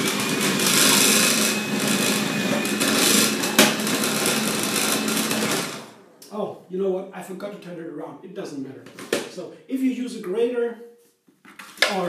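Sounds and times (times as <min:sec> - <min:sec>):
electric grater motor running: 0:00.0 - 0:06.1.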